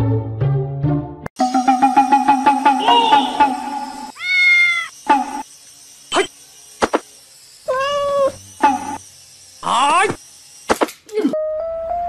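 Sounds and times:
cat meowing: 0:04.1 - 0:04.9, 0:07.7 - 0:08.4.

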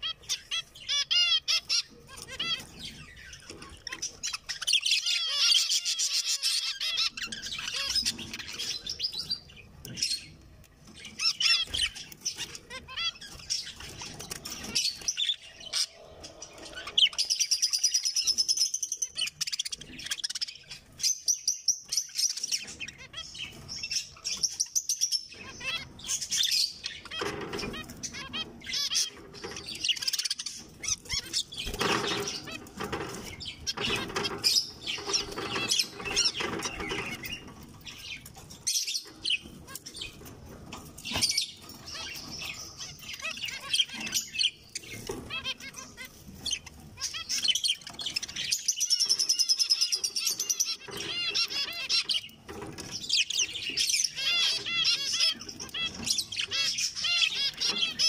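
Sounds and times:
finches chirping and singing: 0:00.0 - 0:58.0.

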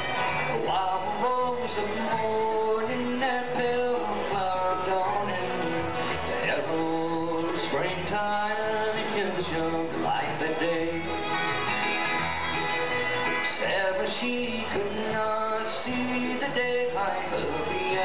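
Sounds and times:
acoustic guitars: 0:00.0 - 0:18.0
fiddle: 0:00.0 - 0:18.0
mandolin: 0:00.0 - 0:18.0
upright bass: 0:00.0 - 0:18.0
men singing: 0:00.4 - 0:11.2, 0:13.4 - 0:18.0.

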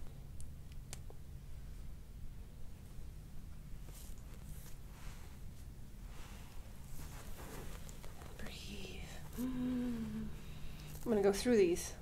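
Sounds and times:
person whispering: 0:08.3 - 0:10.4
woman humming: 0:08.7 - 0:10.6.

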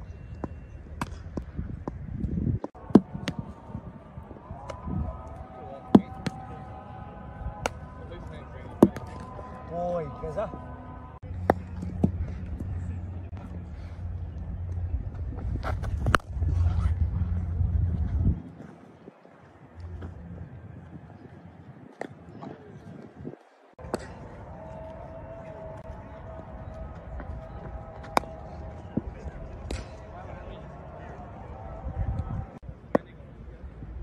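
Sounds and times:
steady low rumble: 0:10.5 - 0:18.8, 0:19.5 - 0:22.4.

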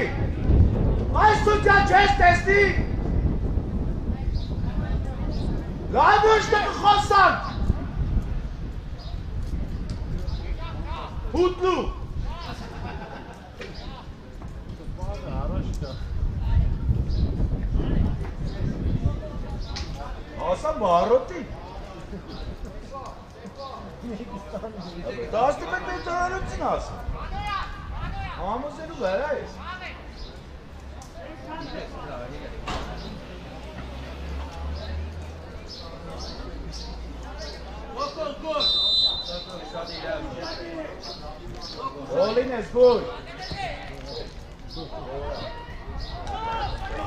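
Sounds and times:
distant shouting voices: 0:00.0 - 0:00.4, 0:01.0 - 0:03.1, 0:05.8 - 0:08.0, 0:25.2 - 0:44.2, 0:44.8 - 0:47.0
footballers shouting calls: 0:00.0 - 0:03.2, 0:05.8 - 0:07.9, 0:10.5 - 0:12.8, 0:36.8 - 0:47.0.

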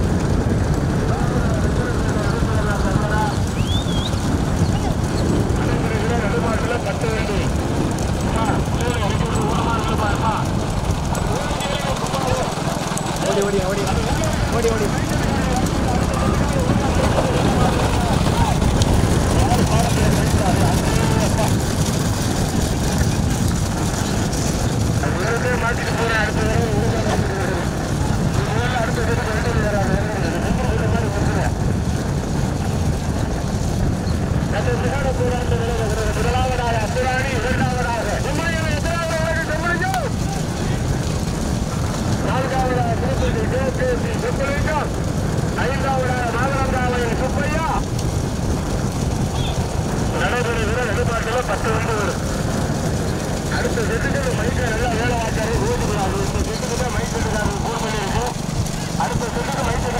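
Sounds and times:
vehicle engine rumble: 0:00.0 - 0:59.9
wind on microphone: 0:00.0 - 0:59.9.

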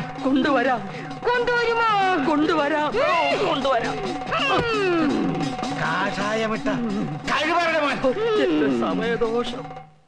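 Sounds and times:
background film music: 0:00.0 - 0:10.0.

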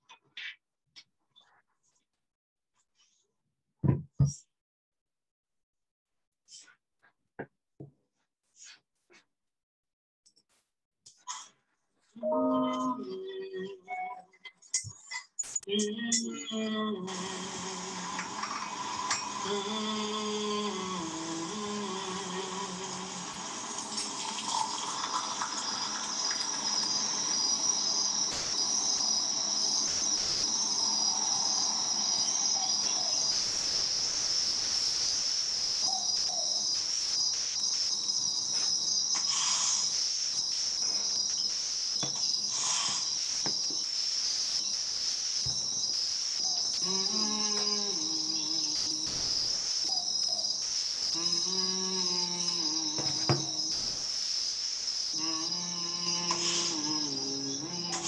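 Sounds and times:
crickets chirring: 0:24.2 - 0:58.0.

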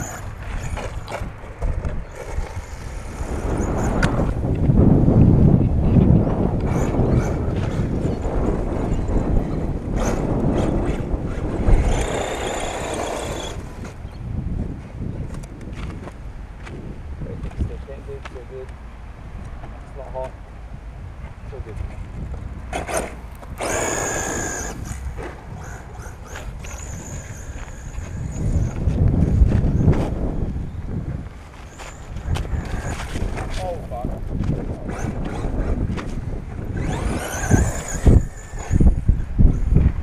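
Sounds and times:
rc truck motor whine: 0:00.0 - 0:04.4, 0:06.6 - 0:14.2, 0:22.7 - 0:30.2, 0:31.6 - 0:33.5, 0:36.4 - 0:40.0.

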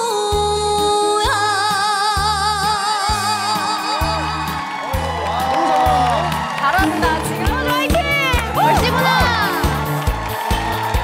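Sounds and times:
bass line: 0:00.0 - 0:11.0
live band playing: 0:00.0 - 0:11.0.

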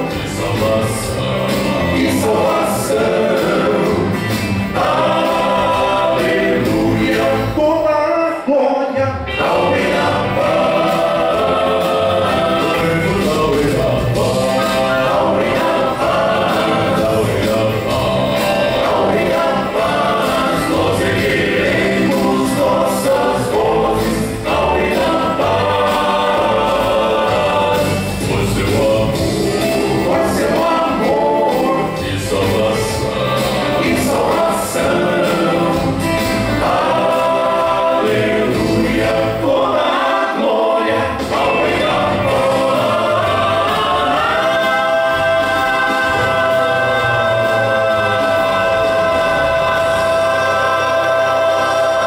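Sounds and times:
male vocal quartet singing a hymn: 0:00.0 - 0:52.0.

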